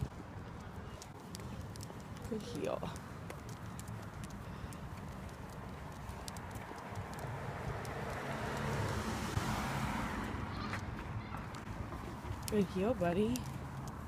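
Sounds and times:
footsteps on pavement: 0:00.0 - 0:14.0
passing vehicle: 0:00.0 - 0:14.0.

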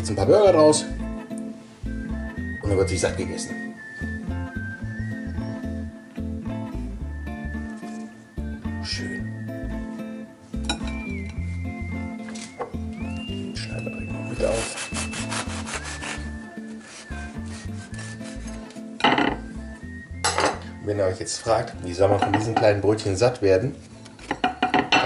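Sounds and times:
knife sawing through bread: 0:14.3 - 0:18.6.

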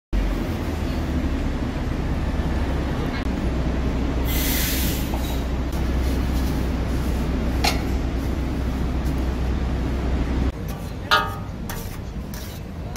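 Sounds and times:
low background rumble: 0:05.0 - 0:12.9.

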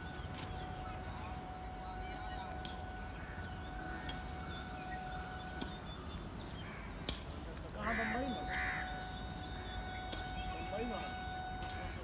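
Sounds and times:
loud harsh bird calls: 0:00.0 - 0:12.0
steady faint tone: 0:00.0 - 0:12.0.

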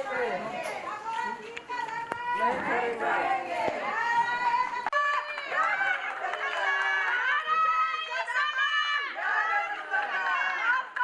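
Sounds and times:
women calling out and cheering: 0:00.0 - 0:11.0.

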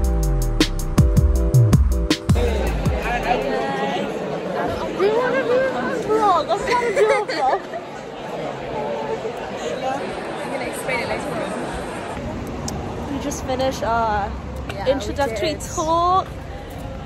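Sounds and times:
crowd chatter in hall: 0:02.2 - 0:17.0
nearby voices talking: 0:02.4 - 0:12.1.

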